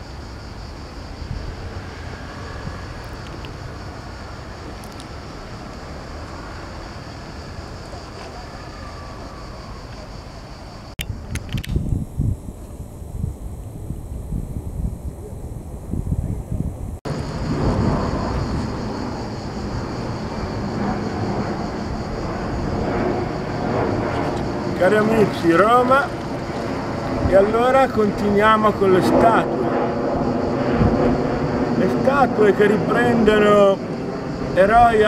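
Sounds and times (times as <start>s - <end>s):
distant traffic hum: 0.0s - 11.7s, 17.0s - 35.0s
wind gusting on microphone: 0.0s - 35.0s.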